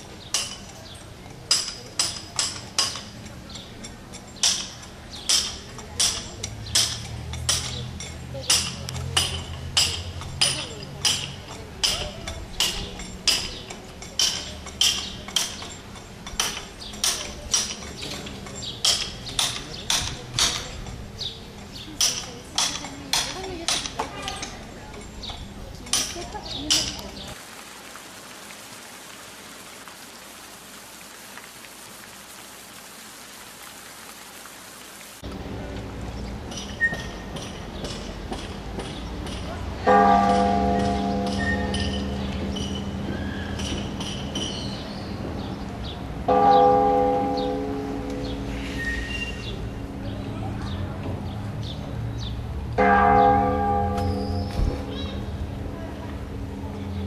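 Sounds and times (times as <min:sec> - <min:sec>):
large bell ringing: 0:39.8 - 0:43.1, 0:46.3 - 0:48.6, 0:52.8 - 0:55.6.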